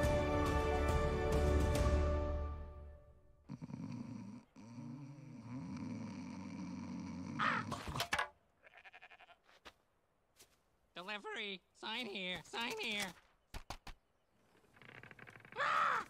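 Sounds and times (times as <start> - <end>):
cartoon man snoring: 3.4 - 7.8.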